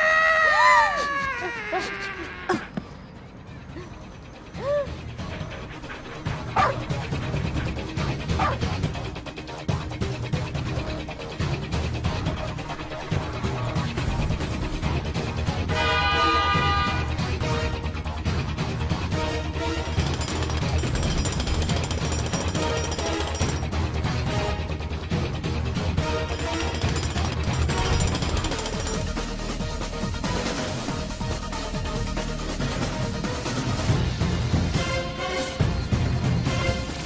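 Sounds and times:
background music: 0:00.0 - 0:37.0
dog barking: 0:06.5 - 0:06.8, 0:08.4 - 0:08.7
jackhammer hammering: 0:19.8 - 0:23.7, 0:26.3 - 0:29.4.

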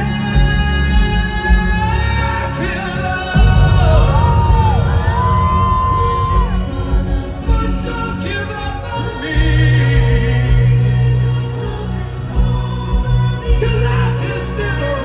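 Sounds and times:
rock band playing live: 0:00.0 - 0:15.0.

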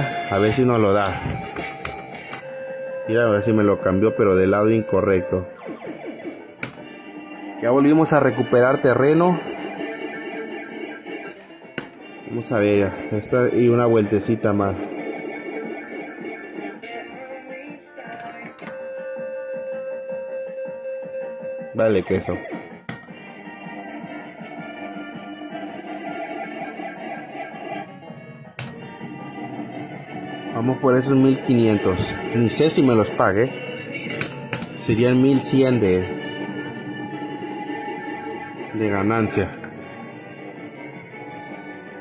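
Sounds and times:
slot machine electronic beep tones: 0:00.0 - 0:11.4, 0:12.0 - 0:16.8, 0:29.6 - 0:33.8
slot machine electronic music: 0:00.0 - 0:42.0.

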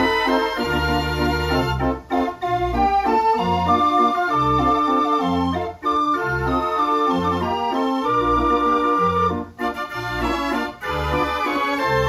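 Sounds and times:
street organ playing a tune: 0:00.0 - 0:12.0.

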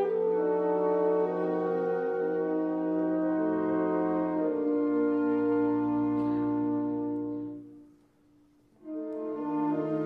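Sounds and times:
alto saxophone: 0:00.0 - 0:10.0
orchestra chords: 0:00.0 - 0:10.0.

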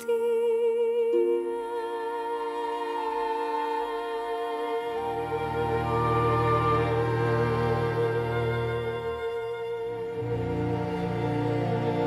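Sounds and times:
slow orchestral music: 0:00.0 - 0:12.0.

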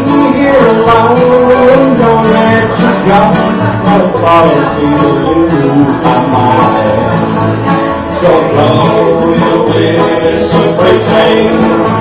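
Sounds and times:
person singing: 0:00.0 - 0:07.4, 0:08.0 - 0:12.0
bluegrass band playing: 0:00.0 - 0:12.0.

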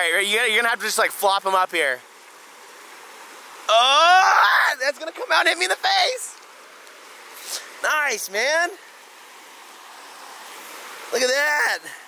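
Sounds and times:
river rushing over rocks: 0:00.0 - 0:12.0.

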